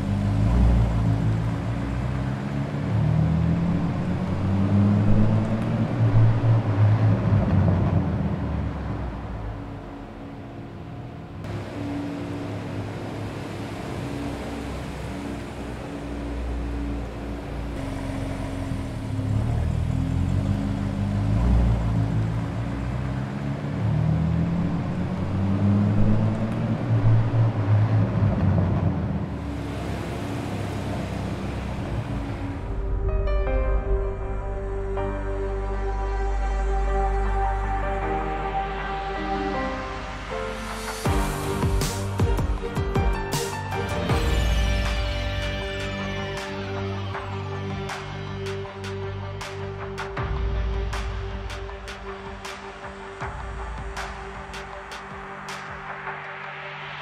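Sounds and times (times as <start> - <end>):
car engine revving: 0.0 - 33.3.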